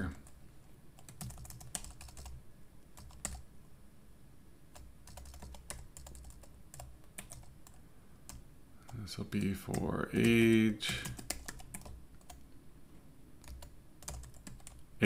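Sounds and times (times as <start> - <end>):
computer keyboard typing: 1.0 - 2.4, 3.0 - 3.5, 4.7 - 12.4, 13.4 - 14.8.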